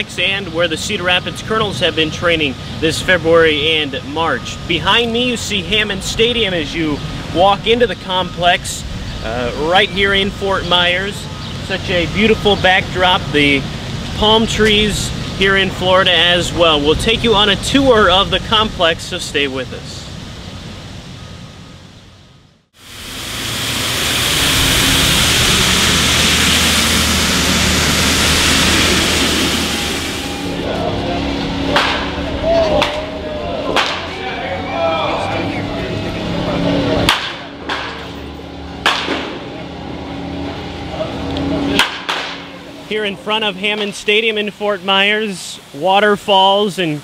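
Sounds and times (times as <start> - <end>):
loud steady rushing noise: 0.0 - 47.0
bat cracking baseballs: 31.7 - 33.0, 33.7 - 34.1, 37.0 - 38.2, 38.8 - 39.4, 41.7 - 42.5.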